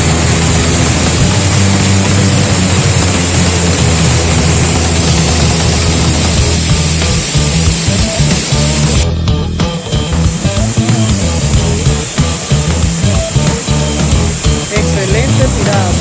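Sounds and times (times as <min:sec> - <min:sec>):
waterfall rushing: 0:00.0 - 0:09.0, 0:09.8 - 0:16.0
background music: 0:00.0 - 0:16.0.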